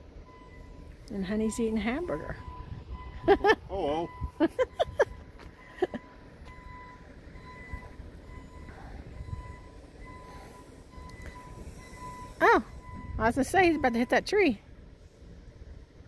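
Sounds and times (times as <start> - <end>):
heavy diesel machinery rumbling: 0.0 - 16.0
high-pitched tone: 5.9 - 14.3.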